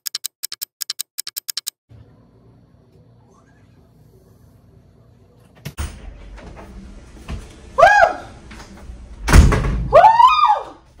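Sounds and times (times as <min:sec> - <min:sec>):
door banging shut: 0:09.2 - 0:09.9.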